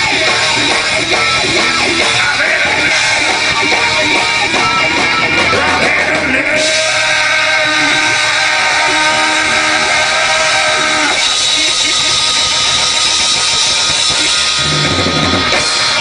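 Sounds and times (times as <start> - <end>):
bass guitar: 0.0 - 16.0
drum kit: 0.0 - 16.0
electric guitar: 0.0 - 16.0.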